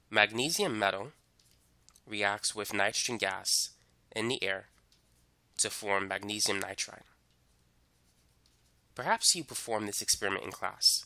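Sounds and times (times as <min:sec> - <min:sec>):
faint room hiss: 0:00.0 - 0:11.0
scratching of writing: 0:07.3 - 0:08.8.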